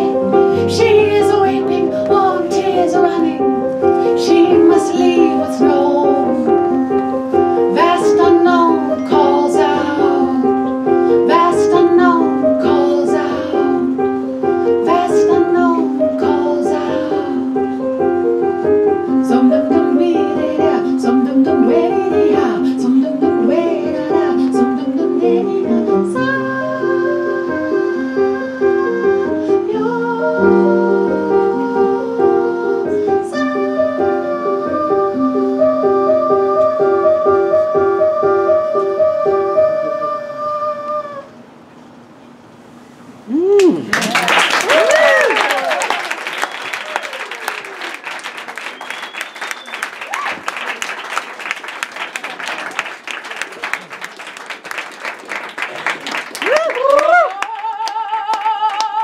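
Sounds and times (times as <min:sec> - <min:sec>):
wordless singing sliding in pitch: 0:00.0 - 0:17.8, 0:19.1 - 0:41.5
digital piano playing: 0:00.0 - 0:40.9.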